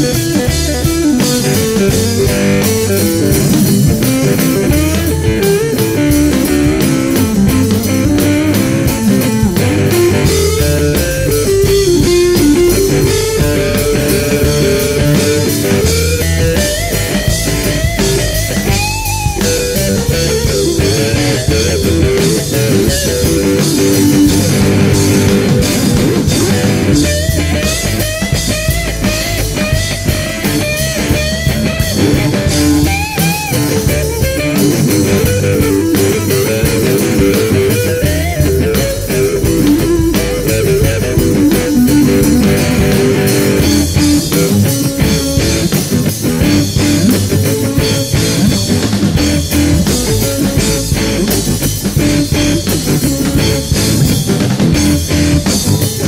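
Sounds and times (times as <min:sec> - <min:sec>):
bass guitar: 0:00.0 - 0:56.0
drum kit: 0:00.0 - 0:56.0
electric guitar lead: 0:00.0 - 0:56.0.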